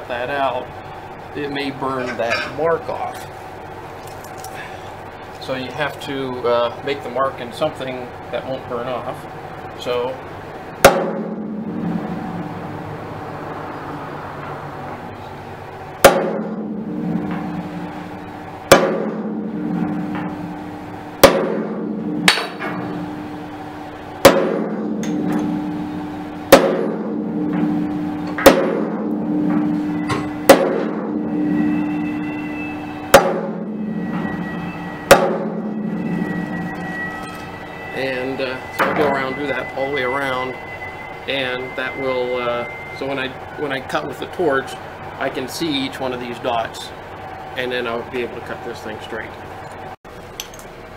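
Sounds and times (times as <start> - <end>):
hammer striking punch on steel: 10.8 - 12.0, 16.0 - 17.9, 18.7 - 20.6, 21.2 - 23.1, 24.2 - 37.6
steel tank ringing: 16.0 - 49.3.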